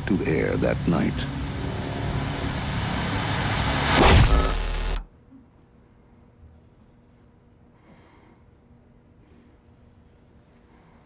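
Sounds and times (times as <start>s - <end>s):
low rumbling drone: 0.0s - 5.1s.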